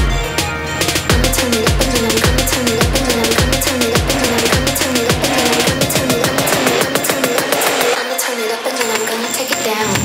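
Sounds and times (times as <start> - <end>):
kick drum and bass: 0.0 - 7.8
wavering synth melody: 1.1 - 8.9.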